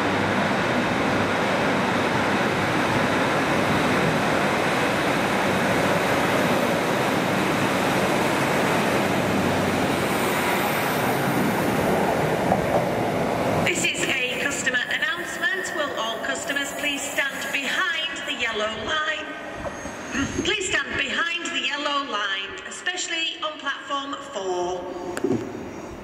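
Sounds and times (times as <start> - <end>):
diesel train passing: 0.0 - 21.2.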